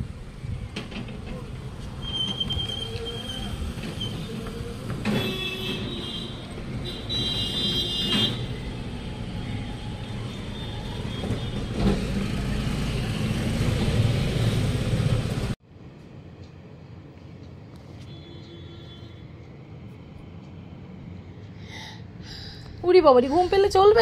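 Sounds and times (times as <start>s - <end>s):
heavy road traffic noise: 0.0s - 24.0s.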